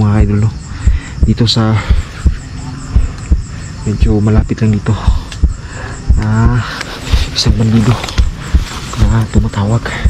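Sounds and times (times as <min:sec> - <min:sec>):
dull low thumps: 0:00.0 - 0:10.0.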